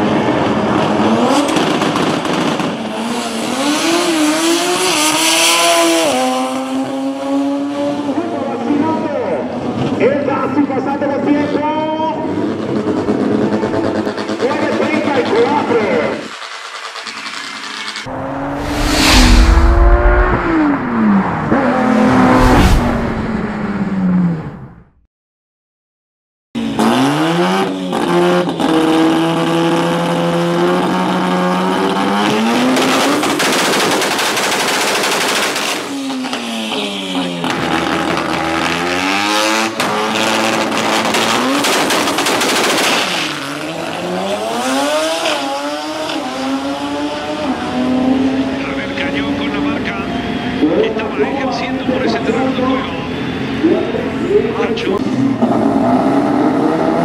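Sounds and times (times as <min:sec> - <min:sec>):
rotary engine at full throttle: 0:12.4 - 0:24.0, 0:26.6 - 0:36.7, 0:37.3 - 0:49.7
intro sound effect: 0:18.1 - 0:24.2.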